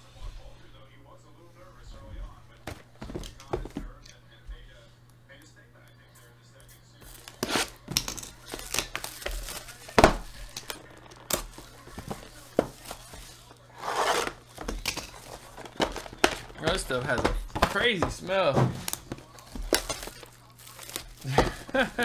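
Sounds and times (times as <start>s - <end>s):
plastic wrap tearing and crinkling: 7.1s - 17.0s, 18.8s - 22.0s
cardboard boxes knocking: 15.4s - 19.7s.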